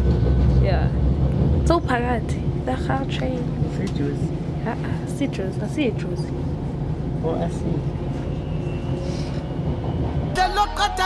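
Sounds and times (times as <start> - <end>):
train running rumble: 0.0 - 10.8.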